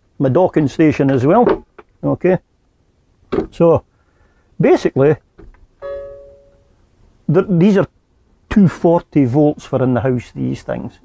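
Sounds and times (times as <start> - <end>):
chime-like note: 5.8 - 6.7.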